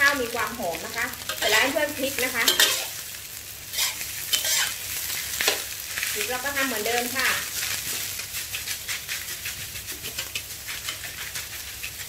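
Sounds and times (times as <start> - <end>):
rice sizzling in a wok: 0.0 - 12.0
metal spatula scraping a wok: 1.2 - 12.0.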